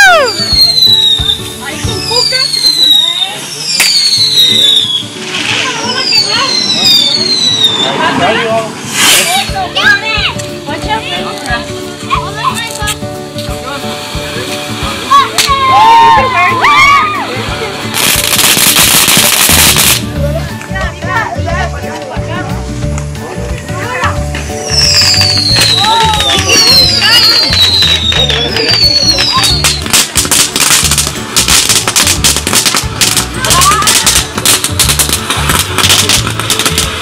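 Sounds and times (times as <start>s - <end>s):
whistling fireworks: 0.0s - 9.9s, 15.1s - 20.1s, 24.5s - 37.0s
firework bang: 0.0s - 10.0s, 17.7s - 20.1s, 24.0s - 37.0s
crackling hiss of spraying sparks: 0.0s - 20.9s, 21.8s - 37.0s
excited shouting voices: 15.1s - 17.4s.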